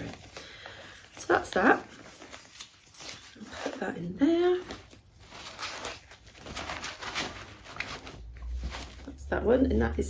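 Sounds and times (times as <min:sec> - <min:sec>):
plastic bag crinkling: 0:00.0 - 0:09.7
fabric bag rustling: 0:00.0 - 0:10.0.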